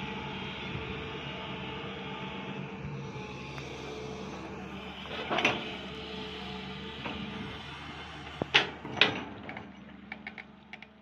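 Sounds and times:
faint low engine hum: 0.0 - 11.0
excavator bucket scraping stony soil: 4.8 - 6.0.

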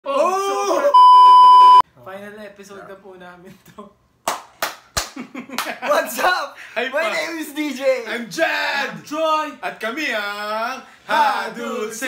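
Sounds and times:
person crying out: 0.0 - 1.0
censor bleep: 0.9 - 1.8.

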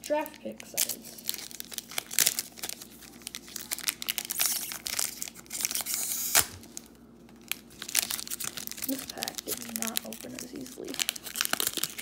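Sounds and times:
foil wrapper crinkling and tearing: 0.0 - 12.0
foil wrapper sharp snap: 4.0 - 6.9.

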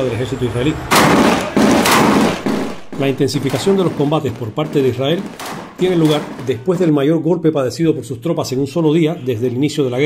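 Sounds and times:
machine gun firing indoors: 0.9 - 6.8.

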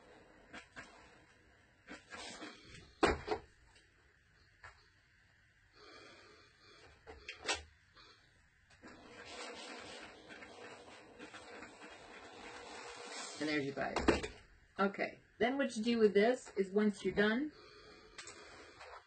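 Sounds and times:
iron rubbing over fabric: 0.0 - 2.9, 8.8 - 14.0.

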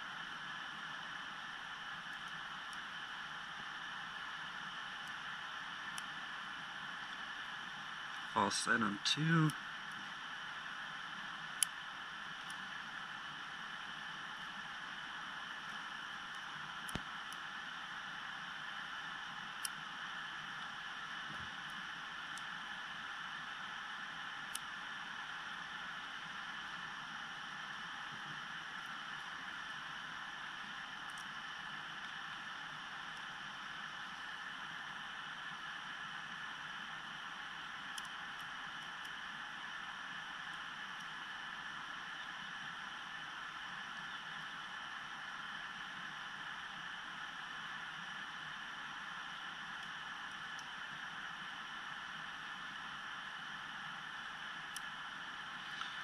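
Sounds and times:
steady hiss: 0.0 - 56.0.

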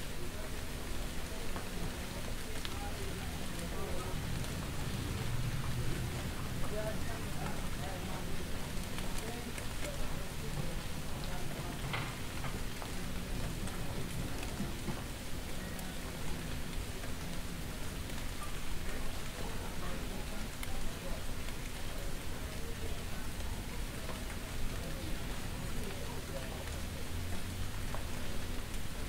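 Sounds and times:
rain falling on a street: 0.0 - 29.0.

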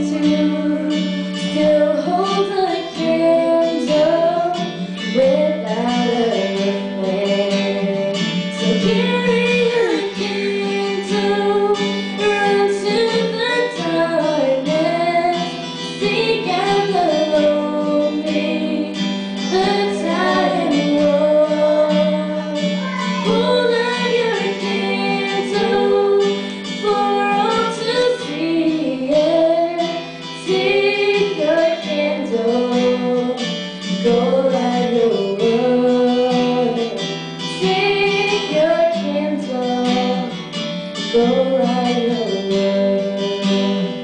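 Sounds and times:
strummed acoustic guitar: 0.0 - 44.0
women singing: 0.0 - 44.0.

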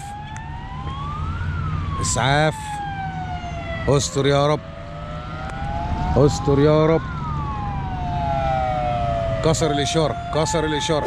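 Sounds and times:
ambulance siren wailing: 0.0 - 11.0
low traffic rumble: 0.0 - 11.0.

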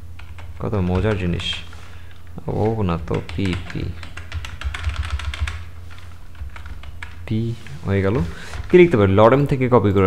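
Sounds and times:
computer keyboard typing: 0.0 - 1.8, 2.6 - 7.3
steady low hum: 0.0 - 10.0.

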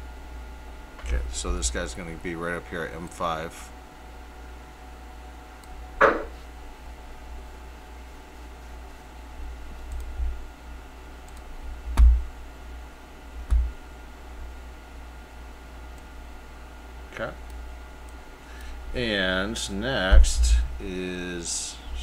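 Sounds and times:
steady low hum: 0.0 - 22.0
computer mouse clicks: 9.8 - 10.1, 11.3 - 12.1.

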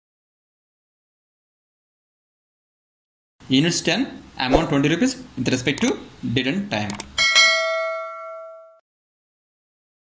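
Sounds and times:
bright bell chime: 7.2 - 8.8.

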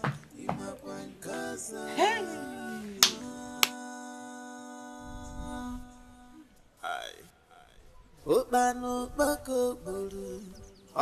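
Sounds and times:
woman's voice: 1.9 - 2.5
finger snaps: 3.0 - 3.8.

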